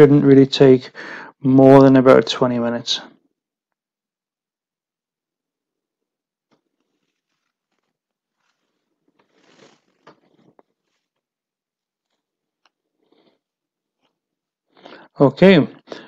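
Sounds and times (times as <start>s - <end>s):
soft rustle: 6.4s - 14.4s.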